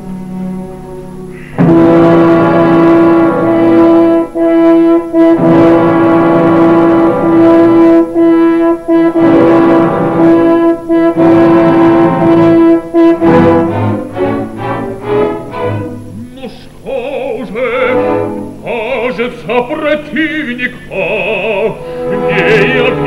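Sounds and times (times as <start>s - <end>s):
orchestra playing slow passage: 0.0s - 23.0s.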